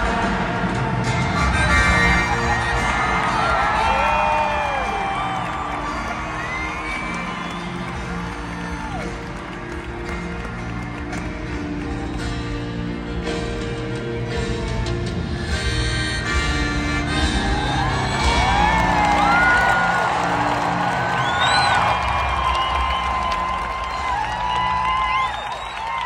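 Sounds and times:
crowd cheering and whistling: 0.0s - 12.8s, 15.6s - 26.0s
live band playing chords: 0.0s - 26.0s.

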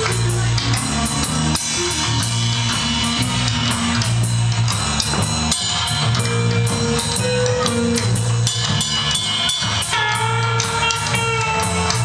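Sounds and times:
bass guitar: 0.0s - 12.0s
drum kit: 0.0s - 12.0s
cymbals struck: 0.2s - 12.0s
electric guitar long notes: 6.0s - 12.0s.

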